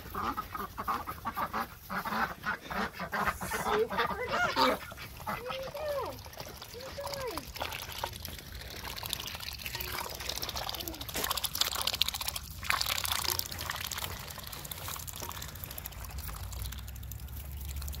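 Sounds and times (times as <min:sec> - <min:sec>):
ducks slurping and splashing: 0:00.0 - 0:18.0.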